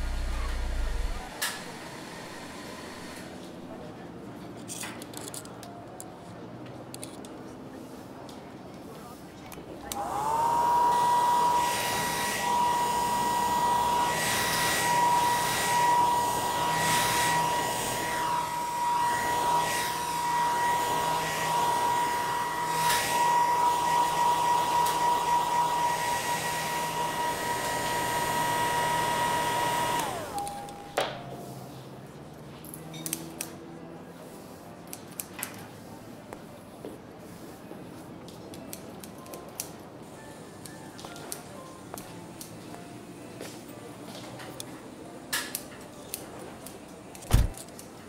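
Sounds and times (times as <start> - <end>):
hair dryer motor whine: 0.0 - 3.2, 9.9 - 30.9
hair dryer switch: 9.9 - 20.7, 21.5 - 30.8.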